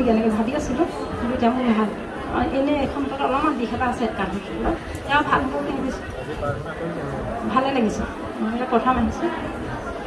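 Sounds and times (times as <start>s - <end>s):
woman talking into microphone: 0.0s - 6.0s.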